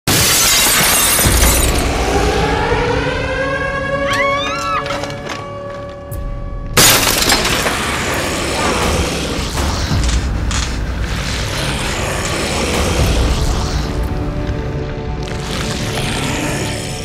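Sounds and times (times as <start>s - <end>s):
glass shattering: 0.1s - 1.8s, 6.8s - 7.9s
sustained music drone: 1.2s - 17.0s.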